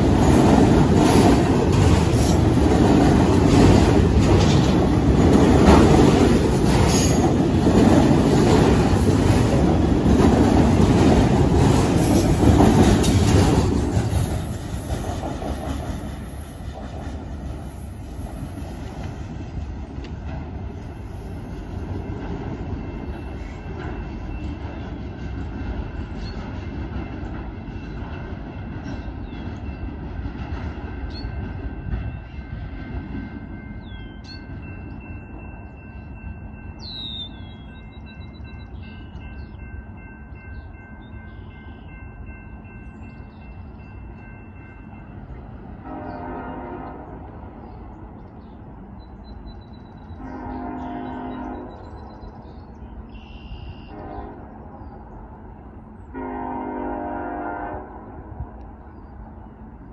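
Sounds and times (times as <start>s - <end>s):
freight train cars rolling: 0.0s - 59.9s
distant locomotive horn: 45.7s - 47.5s, 50.0s - 52.1s, 53.1s - 55.0s, 55.9s - 58.6s.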